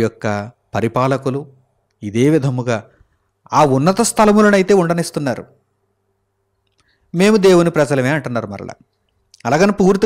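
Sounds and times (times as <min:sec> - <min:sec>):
man preaching into a microphone: 0:00.0 - 0:05.6, 0:07.1 - 0:08.8, 0:09.4 - 0:10.0.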